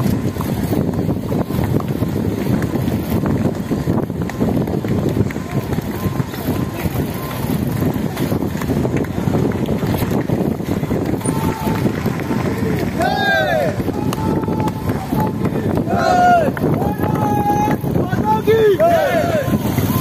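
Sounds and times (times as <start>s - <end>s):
bicycles rolling by: 0.0s - 20.0s
wind buffeting microphone: 0.0s - 20.0s
faint voices: 0.6s - 20.0s.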